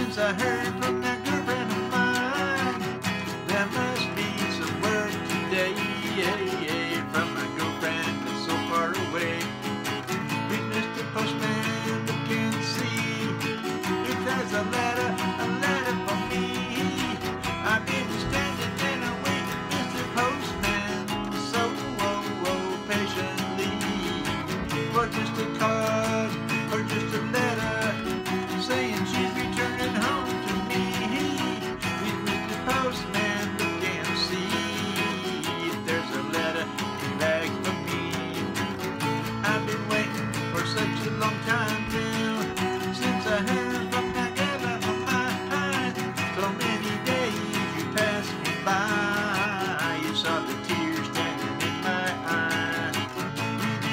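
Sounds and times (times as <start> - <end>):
acoustic guitar strumming: 0.0 - 53.9
man singing: 0.0 - 53.9.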